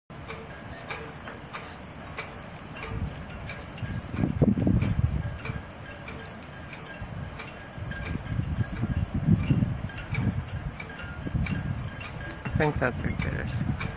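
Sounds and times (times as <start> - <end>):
wind rumble on microphone: 2.8 - 13.9.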